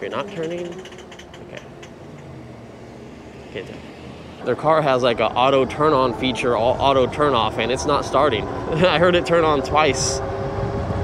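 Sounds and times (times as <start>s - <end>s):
road and tyre noise: 0.0s - 11.0s.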